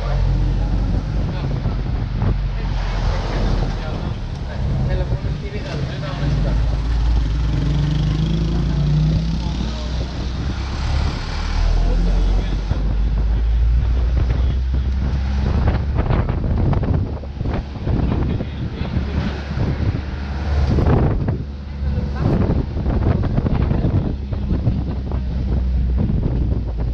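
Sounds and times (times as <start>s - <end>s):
vehicle rumble: 0.0s - 26.9s
wind buffeting microphone: 0.0s - 26.9s.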